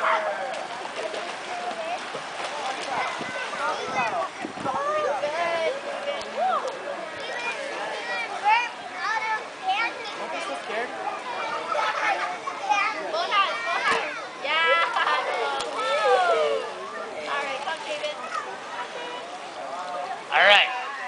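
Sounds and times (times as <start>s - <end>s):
children chattering and calling: 0.0s - 21.0s
water splashing in pool: 0.0s - 21.0s.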